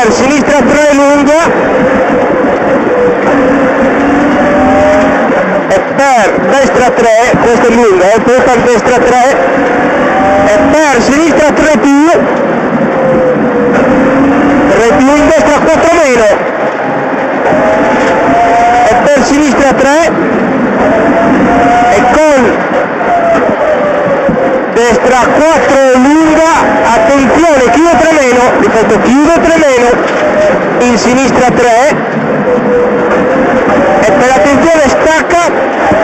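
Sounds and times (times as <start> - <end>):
rally car engine revving: 0.0 - 36.0.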